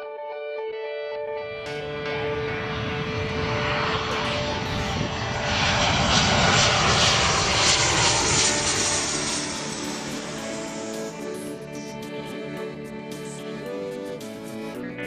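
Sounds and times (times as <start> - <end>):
soft background music: 0.1 - 15.0
jet airliner flying over: 1.4 - 15.0.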